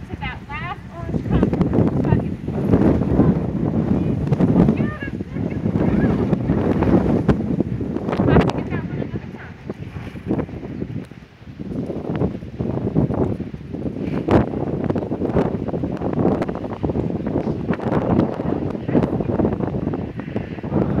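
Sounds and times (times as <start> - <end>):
wind on microphone: 0.0 - 21.0.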